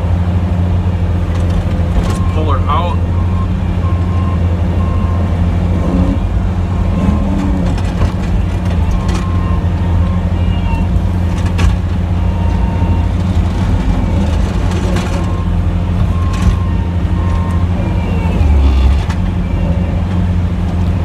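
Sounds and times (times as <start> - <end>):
truck engine droning: 0.0 - 21.0.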